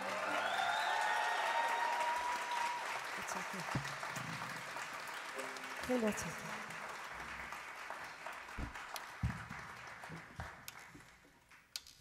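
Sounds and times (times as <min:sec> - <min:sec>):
audience applauding: 0:00.0 - 0:11.7.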